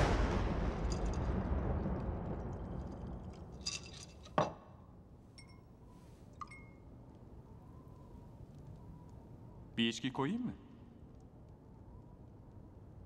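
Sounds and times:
deep boom: 0.0s - 3.6s
glass pings: 5.3s - 5.7s, 6.3s - 6.9s
glass clinks: 5.4s - 5.7s, 6.4s - 6.8s.

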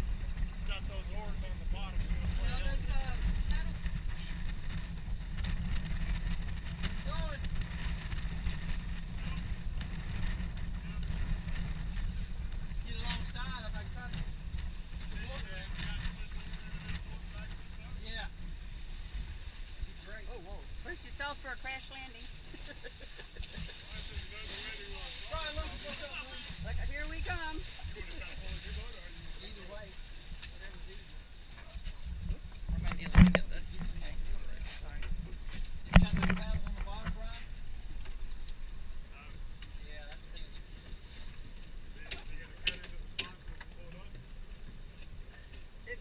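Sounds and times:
wind and water rumble: 0.0s - 46.0s.

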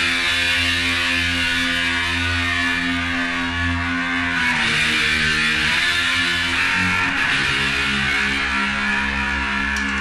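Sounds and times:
distorted electric guitar chord ringing: 0.0s - 10.0s.

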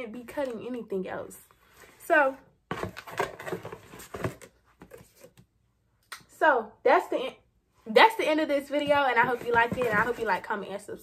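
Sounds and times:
items rustling and knocking: 2.6s - 5.5s, 8.6s - 10.5s.

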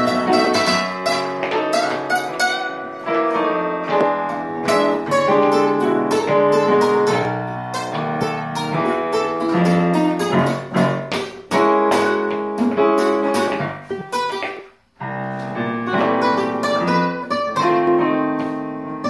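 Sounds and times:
guitars playing blues: 0.0s - 19.0s.

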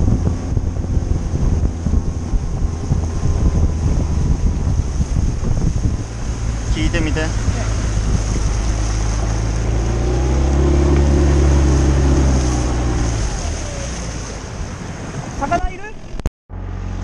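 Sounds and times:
outboard motor running: 0.0s - 17.0s
water rushing along hull: 0.0s - 17.0s.

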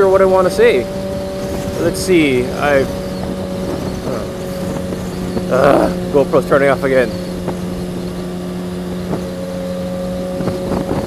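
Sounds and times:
motorcycle engine cruising: 0.0s - 11.0s
wind noise: 0.0s - 11.0s.

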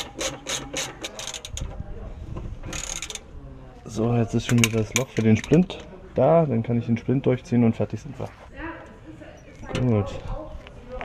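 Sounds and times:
ratchet wrench clicking: 0.0s - 1.7s, 2.7s - 3.2s
metal rubbing and scraping: 0.0s - 3.3s.

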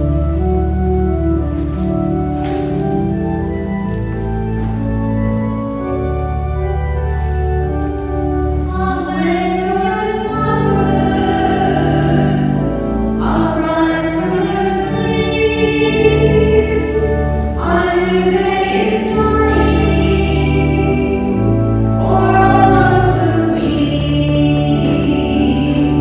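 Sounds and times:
organ chords: 0.0s - 26.0s
congregation singing a hymn: 8.5s - 26.0s.

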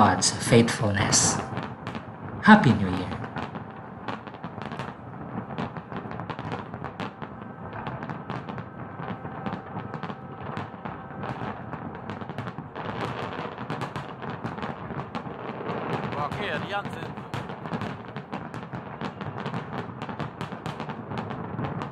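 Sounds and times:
fireworks bangs and crackles: 0.0s - 21.9s.

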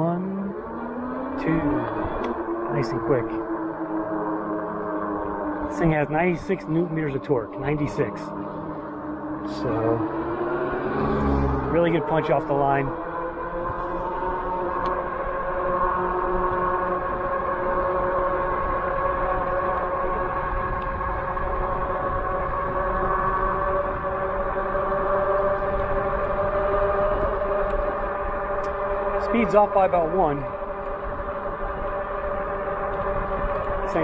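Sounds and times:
wind and tyre rumble: 0.0s - 34.0s
electric motor whining: 0.2s - 34.0s.

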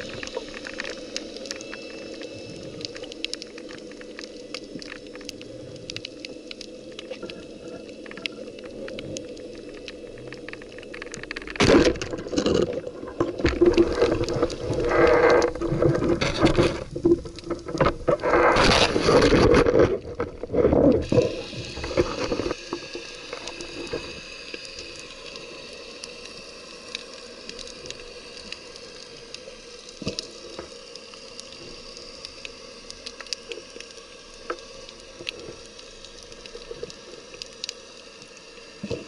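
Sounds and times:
faint steady hiss: 0.0s - 39.0s
sharp crackling clicks: 0.0s - 39.0s
water rushing underwater: 0.0s - 39.0s.

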